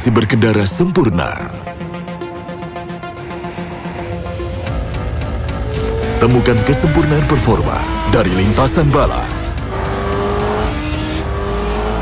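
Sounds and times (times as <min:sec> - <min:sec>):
motorcycle engine at high revs: 0:04.6 - 0:12.0.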